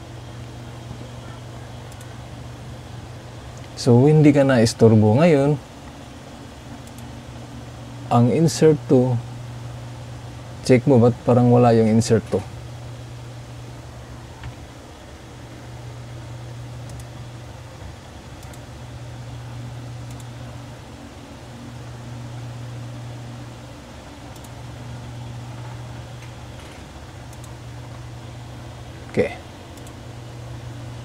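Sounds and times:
low hum: 0.0 - 31.0
faint clicks: 1.9 - 2.1, 6.8 - 7.1, 16.8 - 17.1, 18.4 - 18.7, 20.0 - 20.3, 24.3 - 24.6, 26.2 - 27.6, 29.7 - 30.0.

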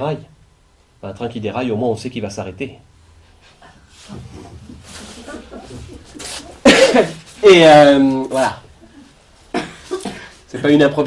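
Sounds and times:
people chuckling and laughing: 3.6 - 7.4.

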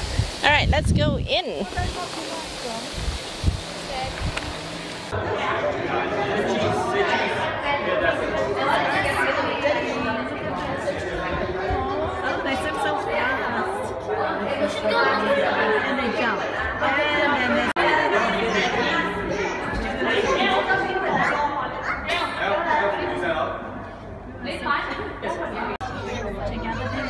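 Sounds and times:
indistinct chatter echoing in hall: 1.6 - 27.0.

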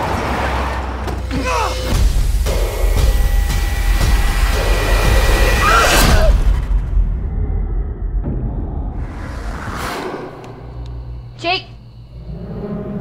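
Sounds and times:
deep low rumble: 6.6 - 13.0
rising whoosh: 7.2 - 11.3.

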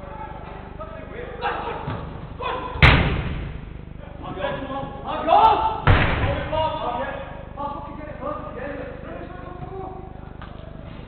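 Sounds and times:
players shouting: 0.1 - 2.8, 4.2 - 6.9
football kick thuds echoing: 2.8 - 3.6, 5.8 - 6.6.

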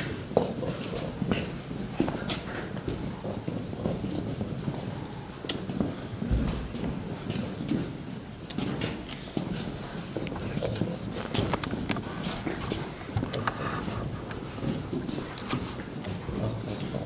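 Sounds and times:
low voices: 8.5 - 17.0.

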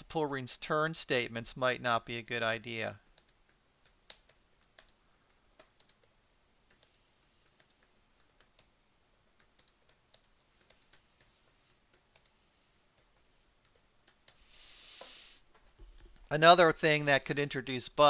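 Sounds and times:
typing on a keyboard: 3.1 - 5.0, 5.6 - 6.1, 6.7 - 8.7, 9.4 - 12.4.

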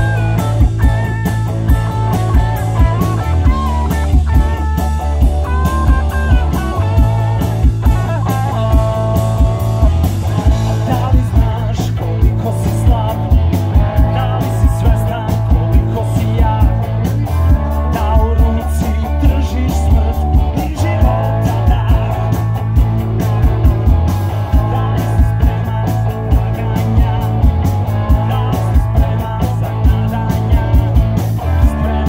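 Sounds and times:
rock band playing: 0.0 - 32.0.

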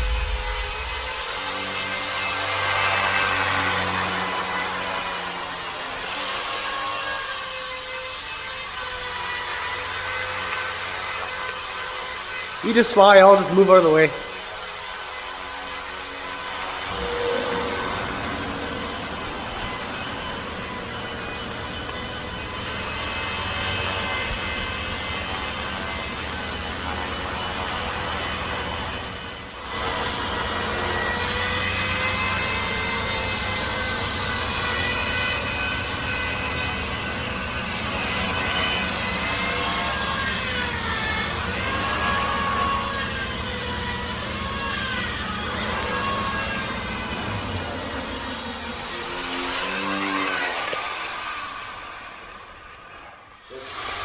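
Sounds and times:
rotor blades humming: 0.0 - 6.1, 12.2 - 52.3
rc helicopter motor whine: 0.0 - 54.0.

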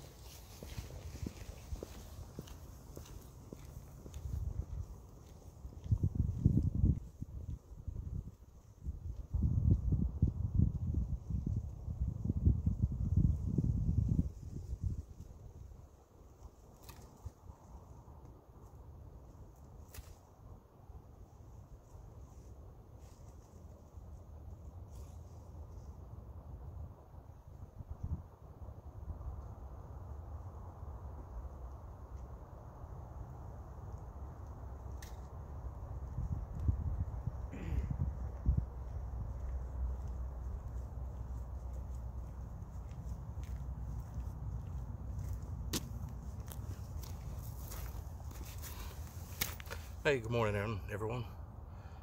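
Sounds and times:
footsteps on pavement: 0.0 - 8.2, 38.2 - 50.0
steady low rumble: 26.0 - 52.0.

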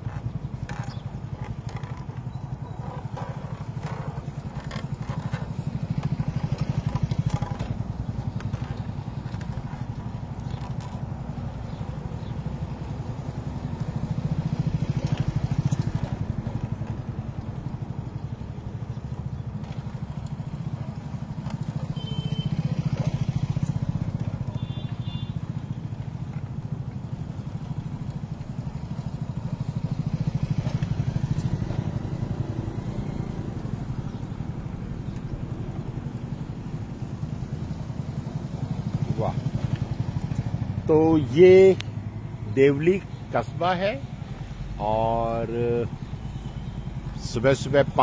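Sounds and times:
motorcycle engine running at low speed: 0.0 - 48.0.

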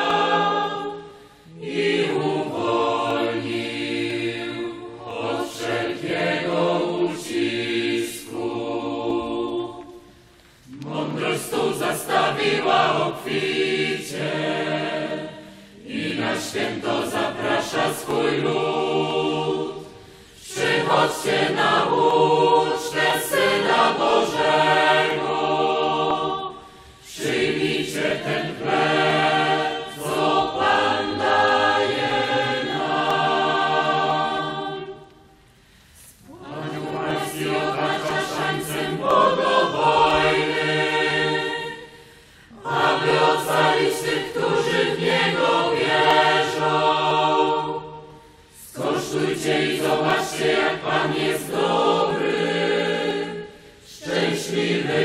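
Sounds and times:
choir singing: 0.0 - 55.0.

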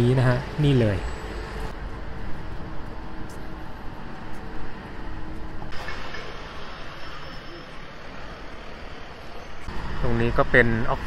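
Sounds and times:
traffic from passing vehicles: 0.0 - 11.0.

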